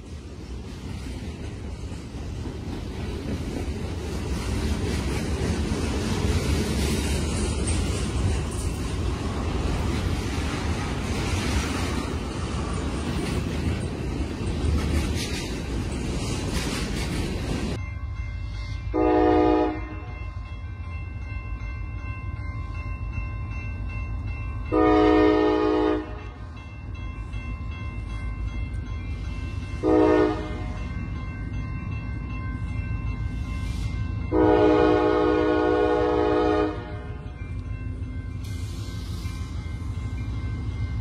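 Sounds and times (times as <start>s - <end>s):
locomotive air horn blasts: 18.9s - 20.1s, 24.7s - 26.2s, 29.8s - 30.8s, 34.3s - 37.2s.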